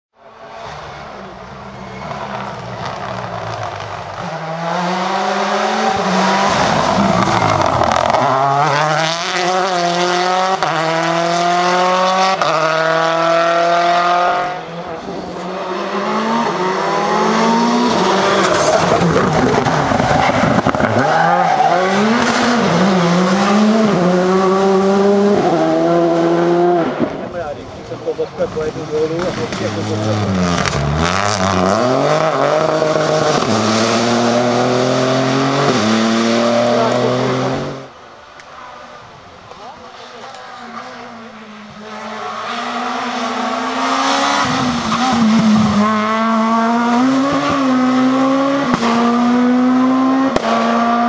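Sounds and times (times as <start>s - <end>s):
rally car engines accelerating: 0.2s - 51.0s.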